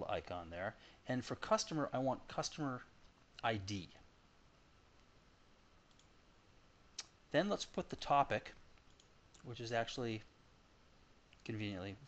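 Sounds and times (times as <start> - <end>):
computer mouse click: 5.8 - 6.1, 8.8 - 9.5.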